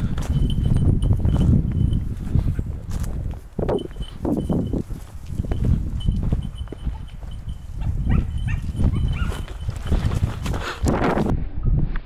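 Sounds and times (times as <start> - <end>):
low rumble of walking: 0.0 - 12.0
dog yelping: 7.8 - 9.6.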